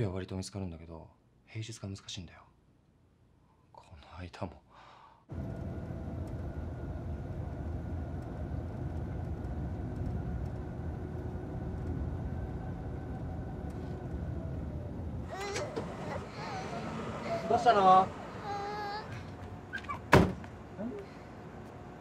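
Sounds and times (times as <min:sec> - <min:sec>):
car engine and road noise: 0:05.3 - 0:22.0
child crying: 0:15.3 - 0:20.0.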